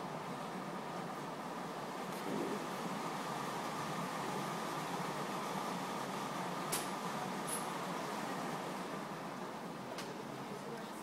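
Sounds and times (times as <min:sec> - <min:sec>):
ventilation hum and hiss: 0:00.0 - 0:11.0.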